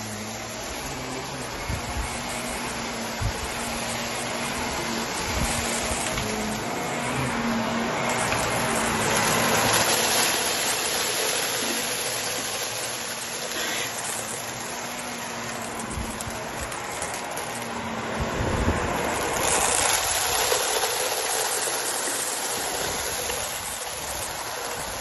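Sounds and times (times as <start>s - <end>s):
vacuum cleaner running on carpet: 0.0s - 25.0s.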